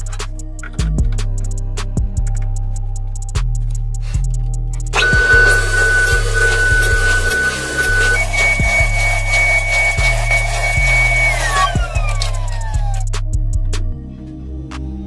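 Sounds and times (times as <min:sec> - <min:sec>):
background music with steady beat: 0:00.0 - 0:15.0
table saw whining and cutting wood: 0:05.0 - 0:13.0.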